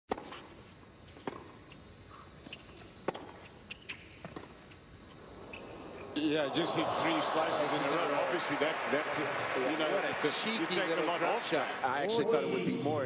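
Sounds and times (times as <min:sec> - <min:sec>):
racquets striking tennis ball: 0:00.1 - 0:01.7, 0:02.4 - 0:04.6
shoe squeaks: 0:00.2 - 0:06.1
ball bouncing: 0:03.0 - 0:03.4.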